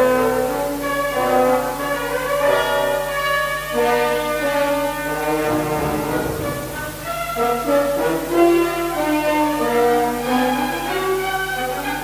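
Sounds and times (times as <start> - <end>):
low bass rumble: 5.2 - 7.6
orchestra brass chord: 5.2 - 7.7.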